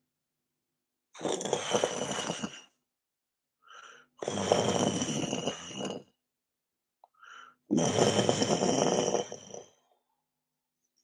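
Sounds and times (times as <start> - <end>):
breath in: 3.6 - 4.1, 7.1 - 7.6.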